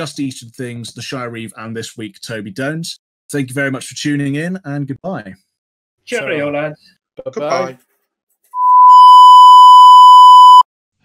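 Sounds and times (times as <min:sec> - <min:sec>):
steady test tone beep: 0:08.6 - 0:10.6.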